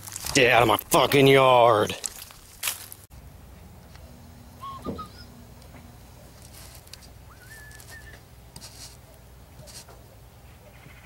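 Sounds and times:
low background hum: 1.0 - 11.0
bird whistling chirps: 4.6 - 5.4, 7.3 - 8.2.

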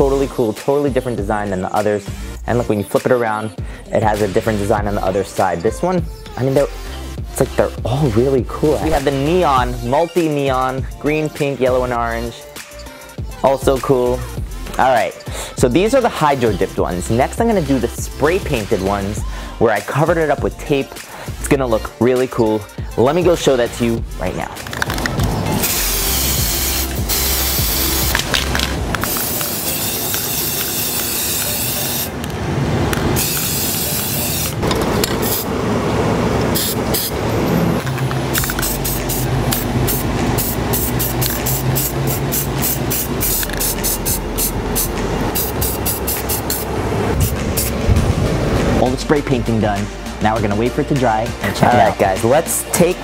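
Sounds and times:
background music: 0.0 - 32.3, 36.9 - 53.0
spray paint cans hissing: 24.6 - 32.3, 32.9 - 35.5, 36.4 - 37.2, 37.8 - 47.9.

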